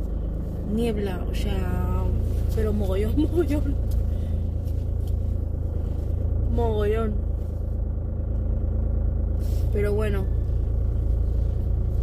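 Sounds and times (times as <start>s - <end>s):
car engine rumble: 0.0s - 12.0s
road noise inside car: 0.0s - 12.0s.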